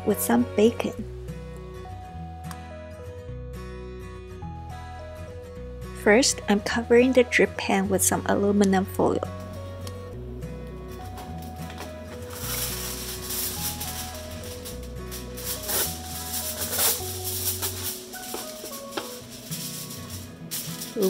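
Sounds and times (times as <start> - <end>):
background music with bass line: 0.0 - 21.0
aluminum foil rustling: 10.9 - 21.0.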